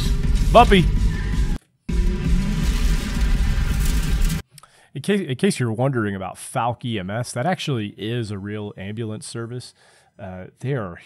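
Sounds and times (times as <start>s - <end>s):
electronic film music with heavy bass: 0.0s - 4.4s.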